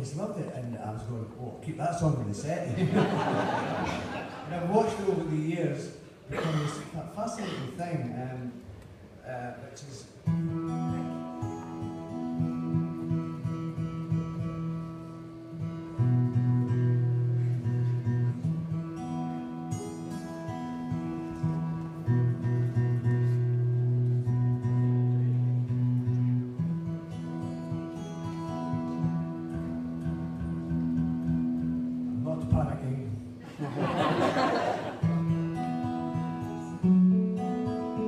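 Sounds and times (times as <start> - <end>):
amplified acoustic guitar chords: 10.1 - 38.0.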